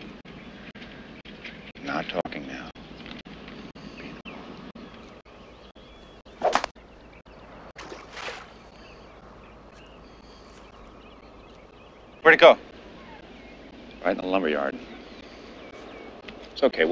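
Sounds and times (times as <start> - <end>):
faint outdoor background noise: 0.0 - 16.9
ball splashing into pond: 6.4 - 6.7, 7.8 - 8.7.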